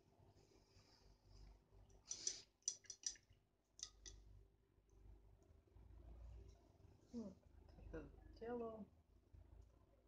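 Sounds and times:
light clicks of painting tools: 0:01.4 - 0:04.2.

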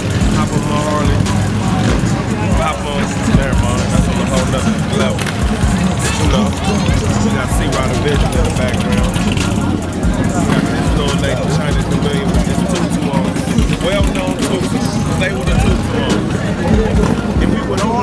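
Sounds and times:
motorcycle engines running: 0:00.0 - 0:18.0
people talking: 0:00.0 - 0:18.0.

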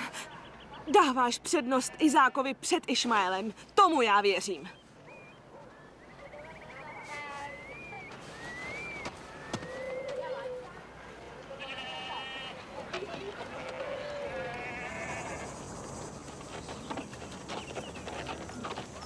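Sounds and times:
sheep and goats bleating: 0:11.5 - 0:12.7, 0:13.3 - 0:15.5.

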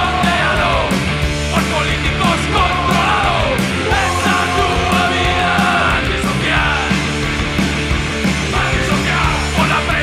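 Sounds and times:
punk rock band playing: 0:00.0 - 0:10.0.

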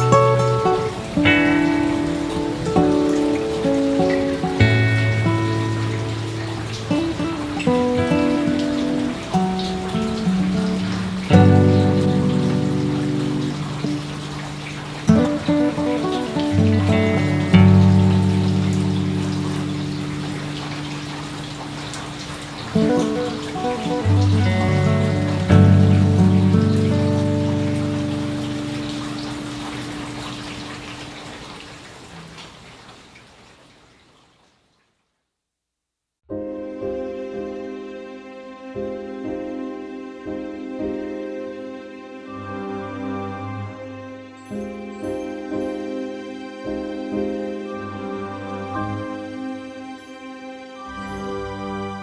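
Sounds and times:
slow meditation music chords: 0:00.0 - 0:31.0.

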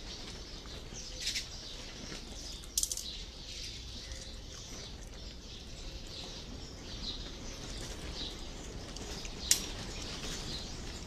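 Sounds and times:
bird calls: 0:00.0 - 0:11.0.

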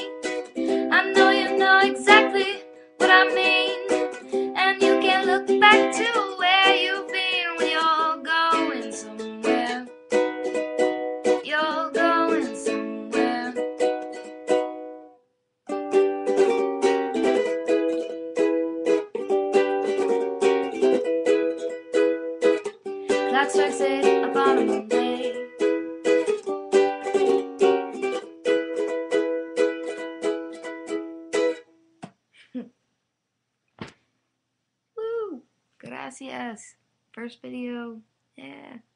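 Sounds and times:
ukulele strummed in chords: 0:00.0 - 0:31.9.

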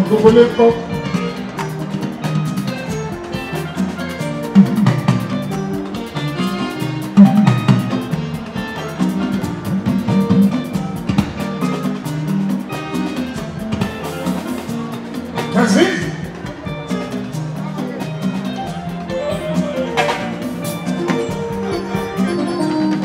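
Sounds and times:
bass guitar: 0:00.0 - 0:23.0
drums and percussion: 0:00.0 - 0:23.0
guitar playing: 0:00.0 - 0:23.0.

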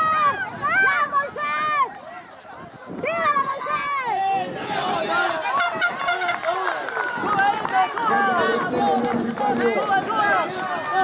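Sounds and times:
spectators calling out and talking: 0:00.0 - 0:11.0.

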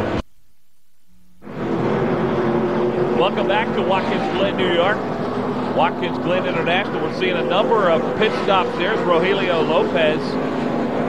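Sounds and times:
low steady hum: 0:00.0 - 0:11.0
race car engines: 0:01.4 - 0:11.0.

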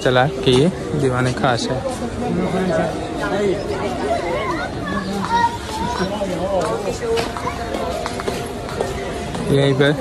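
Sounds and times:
people chattering: 0:00.0 - 0:10.0
children's voices: 0:03.9 - 0:08.4.

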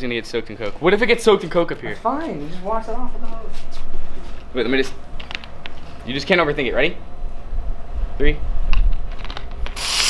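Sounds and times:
soda fizzing hiss: 0:09.7 - 0:10.0.

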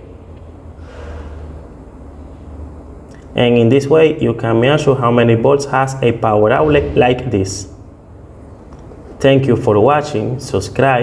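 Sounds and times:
low steady hum: 0:00.0 - 0:11.0
breath near microphone: 0:00.8 - 0:02.6.

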